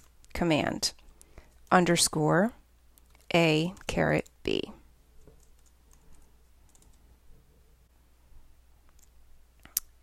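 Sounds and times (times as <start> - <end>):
computer keyboard and mouse clicks: 5.2 - 7.0.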